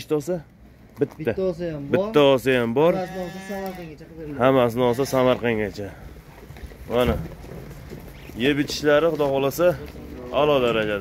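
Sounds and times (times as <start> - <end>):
sheep bleating: 2.8 - 5.6.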